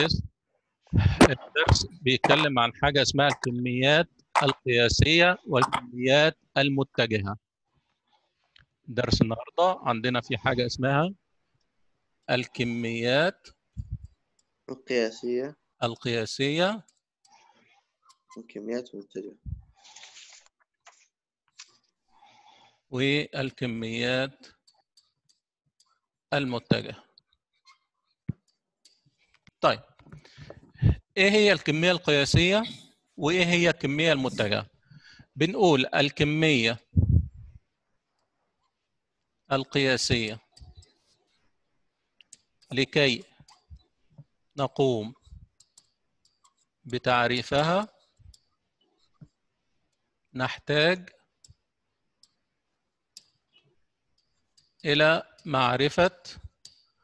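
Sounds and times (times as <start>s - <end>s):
man talking: 0.0s - 0.3s, 1.0s - 7.4s, 8.9s - 11.2s, 12.3s - 13.5s, 14.7s - 16.8s, 18.4s - 19.6s, 23.0s - 24.4s, 26.3s - 27.0s, 30.8s - 34.7s, 35.4s - 37.3s, 39.5s - 40.5s, 42.7s - 43.2s, 44.6s - 45.2s, 46.9s - 48.0s, 50.4s - 51.1s, 54.8s - 56.4s.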